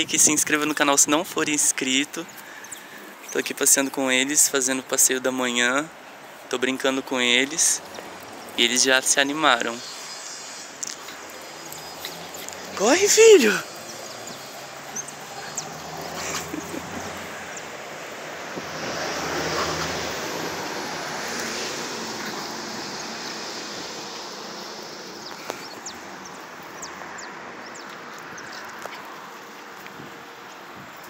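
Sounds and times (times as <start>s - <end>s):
wind noise on microphone: 18.3s - 22.9s.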